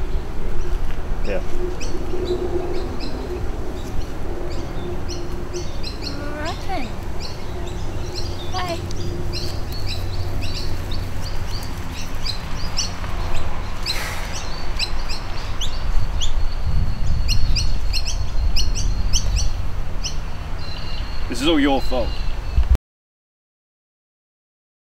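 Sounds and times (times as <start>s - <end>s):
wind rumble on microphone: 0.0s - 21.4s, 22.1s - 22.8s
small birds chirping: 0.0s - 22.8s.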